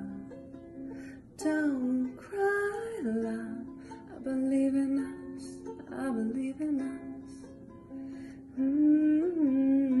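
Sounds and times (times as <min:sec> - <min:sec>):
woman humming: 0:08.6 - 0:10.0.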